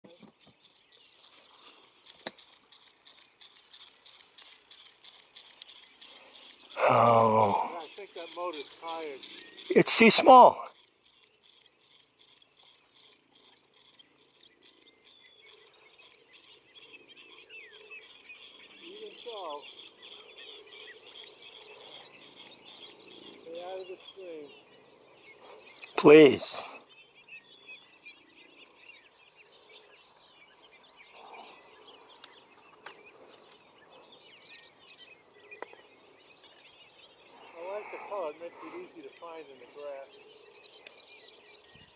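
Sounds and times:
distant bird chirps: 0:00.0 - 0:41.9
faint outdoor background noise: 0:00.0 - 0:41.9.

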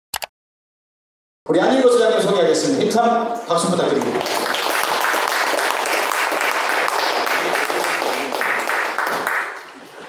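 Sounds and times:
audience applauding: 0:04.0 - 0:10.0.

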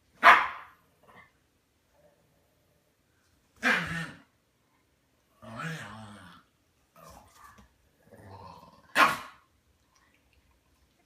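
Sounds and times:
dog barking sharply: 0:00.2 - 0:00.8, 0:09.0 - 0:09.4.

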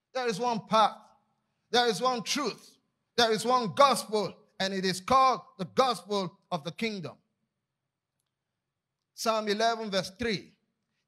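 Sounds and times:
man speaking into a microphone: 0:00.1 - 0:07.2, 0:09.2 - 0:10.6.

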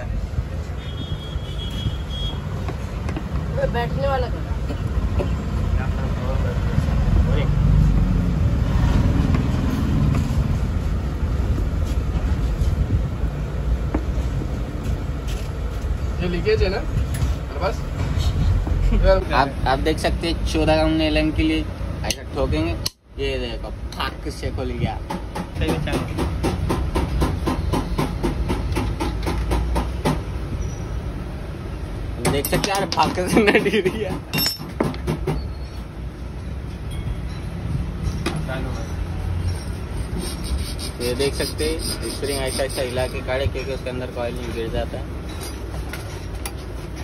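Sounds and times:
motor vehicles rumbling: 0:00.0 - 0:47.0.

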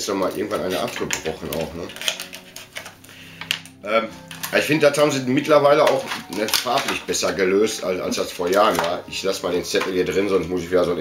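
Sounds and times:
plastic packaging being cut open: 0:00.2 - 0:10.0.

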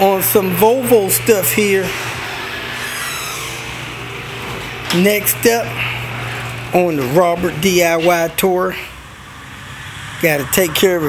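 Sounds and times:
garage door opener humming: 0:00.0 - 0:11.0.

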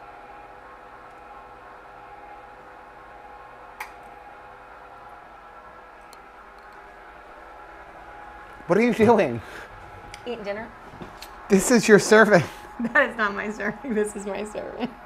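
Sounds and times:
kitchen background hum: 0:00.0 - 0:15.0.

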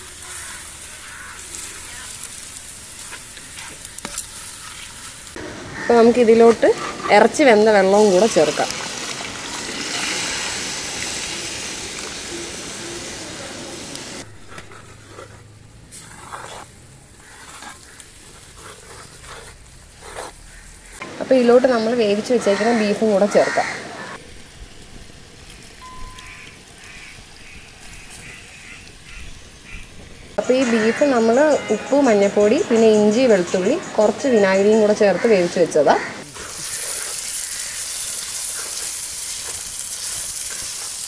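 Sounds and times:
bird calling: 0:00.0 - 0:02.3, 0:25.8 - 0:38.2
loud sizzling hiss: 0:00.0 - 0:14.5, 0:24.1 - 0:41.0
short thin beep: 0:25.8 - 0:26.4.

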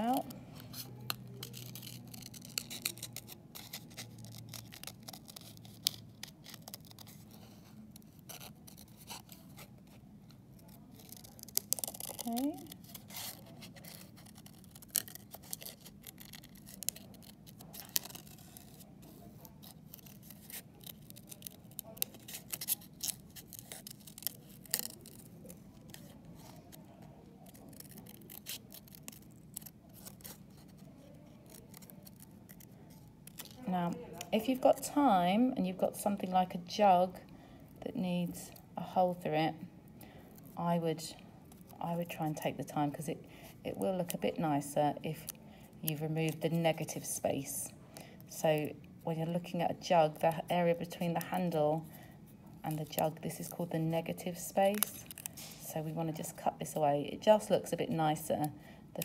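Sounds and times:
scissors cutting paper: 0:00.0 - 0:35.1, 0:50.0 - 0:52.0, 0:52.6 - 0:58.4.

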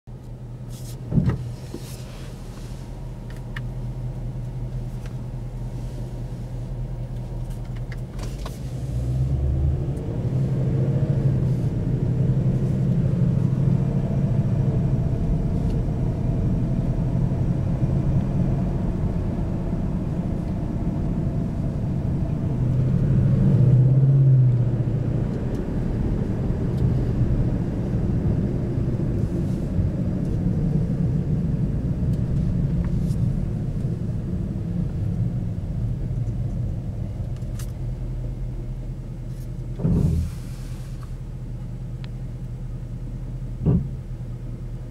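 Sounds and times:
car engine from inside cabin: 0:00.1 - 0:44.9.

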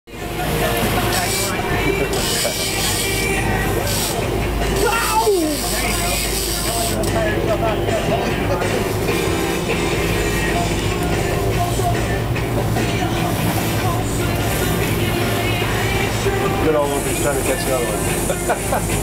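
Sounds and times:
boat engine droning: 0:00.1 - 0:19.0
music: 0:00.1 - 0:19.0
sea noise: 0:00.1 - 0:19.0
voices: 0:00.1 - 0:19.0
wind: 0:00.1 - 0:19.0.

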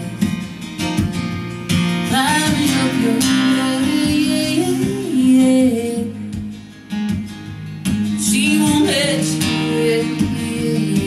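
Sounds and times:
acoustic guitar strumming: 0:00.0 - 0:11.0
woman singing folk-rock song: 0:00.0 - 0:11.0.

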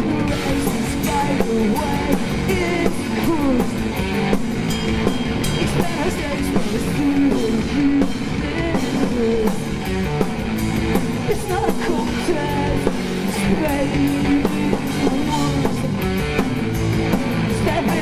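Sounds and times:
drum kit: 0:00.0 - 0:18.0
electric bass: 0:00.0 - 0:18.0
electric guitar: 0:00.0 - 0:18.0.

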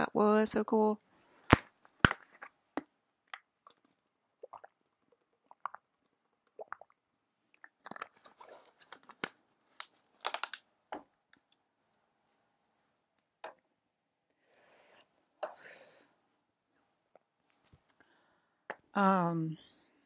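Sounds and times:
plastic bottle crackling: 0:07.6 - 0:11.0.

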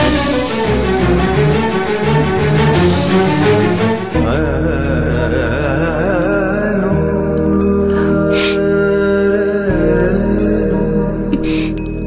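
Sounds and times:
chant-like melody over drone: 0:00.0 - 0:12.0
dramatic orchestral music: 0:00.0 - 0:12.0.

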